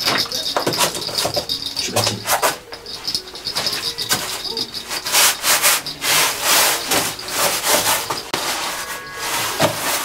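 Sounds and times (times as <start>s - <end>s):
rhythmic rasping strokes: 0.0s - 10.0s.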